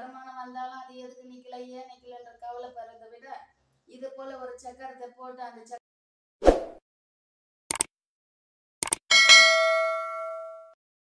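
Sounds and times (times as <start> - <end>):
notification bell ding: 9.1 - 10.8.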